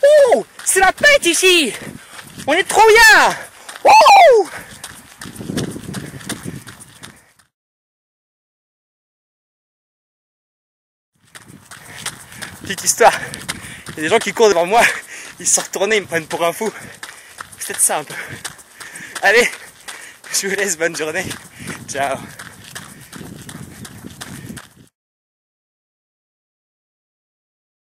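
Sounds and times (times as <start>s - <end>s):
jogger's footfalls thudding: 4.4s - 7.4s, 11.2s - 24.9s.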